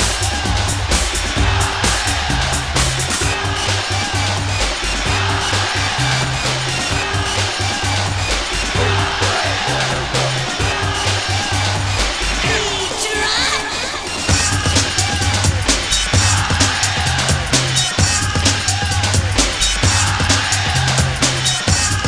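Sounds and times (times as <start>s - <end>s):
rave music: 0.0s - 22.0s.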